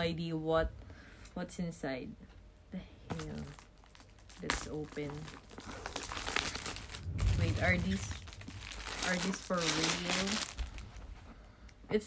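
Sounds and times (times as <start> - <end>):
plastic wrapping crinkling: 3.1 - 11.4.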